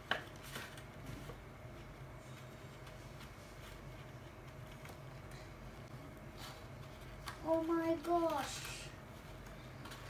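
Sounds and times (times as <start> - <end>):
low steady hum: 0.0 - 10.0
paper crinkle: 0.1 - 5.5, 6.3 - 10.0.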